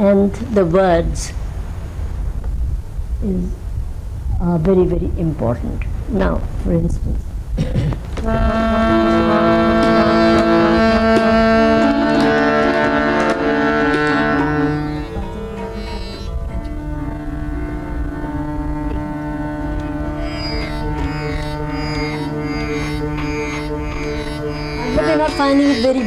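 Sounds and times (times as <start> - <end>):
harmonium chords: 8.2 - 26.0
plucked strings: 8.2 - 26.0.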